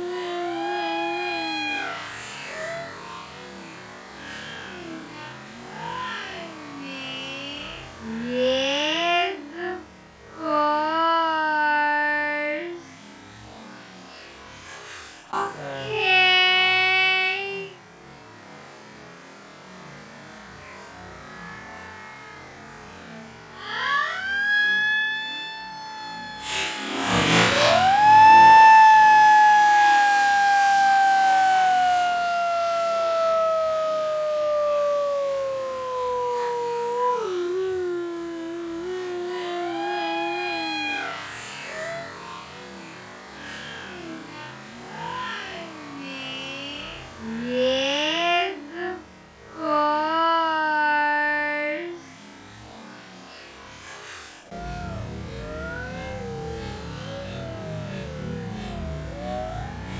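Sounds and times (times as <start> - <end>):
long shout sliding down in pitch: 0.0 - 3.5, 23.1 - 42.7, 54.5 - 59.9
stretched voices gliding: 23.6 - 41.2.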